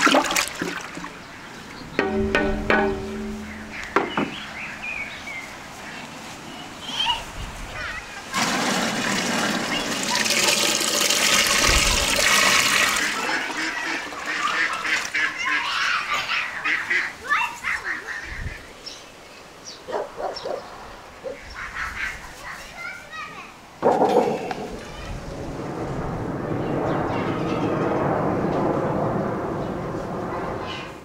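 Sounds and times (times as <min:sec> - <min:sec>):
juice pouring into metal tin: 0:08.4 - 0:14.2.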